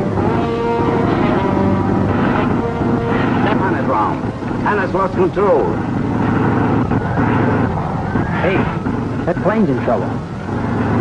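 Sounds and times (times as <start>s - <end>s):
dramatic orchestral music: 0.0s - 7.8s
propeller airplane engine droning: 0.0s - 11.0s.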